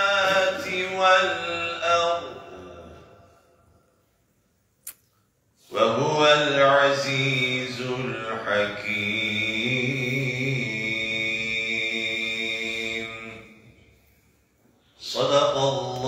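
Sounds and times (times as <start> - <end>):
man chanting melodic recitation: 0.0 - 3.4, 5.7 - 13.8, 14.9 - 16.0.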